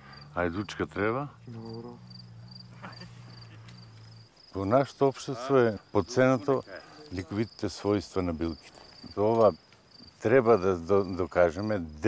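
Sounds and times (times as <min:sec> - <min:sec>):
crickets chirping: 0:00.0 - 0:12.0
man talking: 0:00.4 - 0:02.1, 0:04.6 - 0:09.6, 0:10.2 - 0:12.0.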